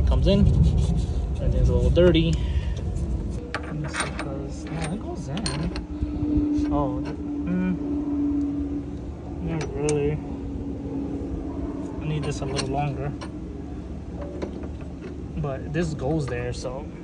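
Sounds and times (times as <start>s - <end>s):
steady low hum: 0.0s - 17.0s
muffled voices: 1.4s - 17.0s.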